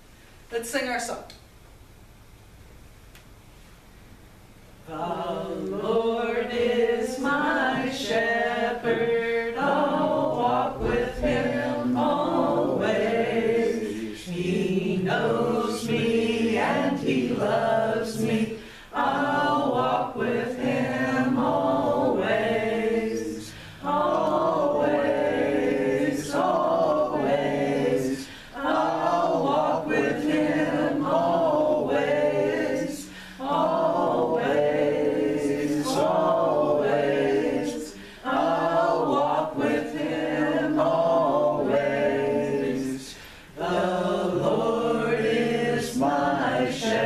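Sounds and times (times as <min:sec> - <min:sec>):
voices singing worship song: 0:04.7 - 0:47.0.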